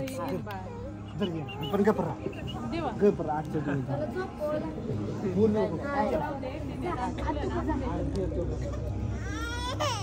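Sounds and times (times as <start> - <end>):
crowd chatter: 0.0 - 10.0
infant crying: 8.6 - 10.0.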